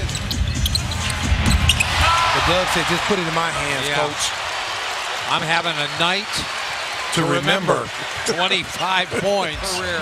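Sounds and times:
arena crowd noise: 0.0 - 10.0.

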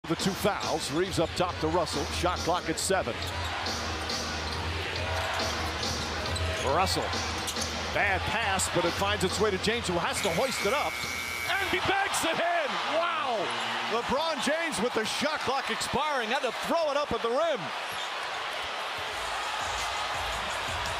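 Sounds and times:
arena crowd hum: 0.0 - 20.9.

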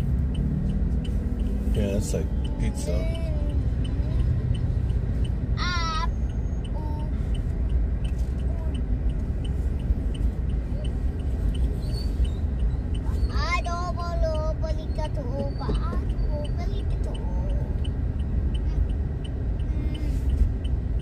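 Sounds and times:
car engine and road rumble: 0.0 - 21.0
turn signal ticking: 0.0 - 21.0.

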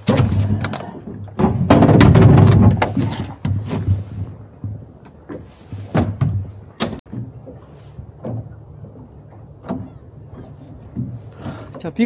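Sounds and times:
knocks and rattles on boat deck: 0.0 - 12.0.

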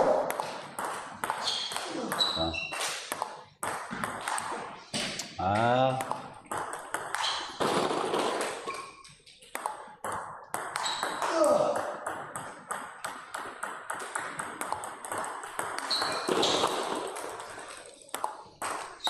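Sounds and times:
table tennis ball clicking: 18.1 - 18.8.

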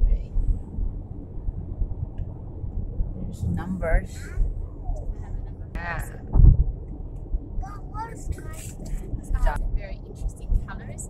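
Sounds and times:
car cabin road rumble: 0.0 - 11.0.

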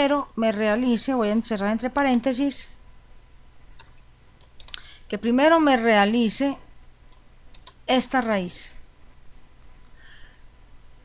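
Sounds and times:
computer keyboard keystrokes: 3.8 - 4.9, 7.1 - 7.8.

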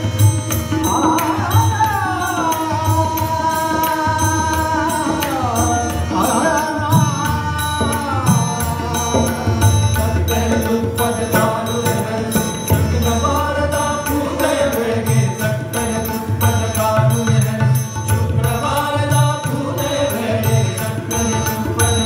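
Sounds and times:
harmonium: 0.0 - 22.0
tabla strokes: 0.0 - 22.0
tanpura drone: 0.0 - 22.0
man singing: 0.7 - 22.0.

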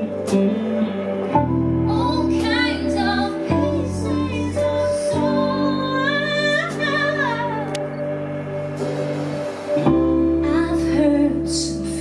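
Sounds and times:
electric guitar: 0.0 - 12.0
keyboard: 0.0 - 12.0
live band playing soul song: 0.0 - 12.0
woman singing: 1.8 - 7.9, 10.2 - 12.0.

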